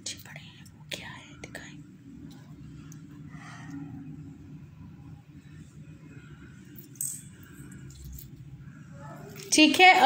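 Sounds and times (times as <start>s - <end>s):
faint whispering: 0.0s - 2.1s.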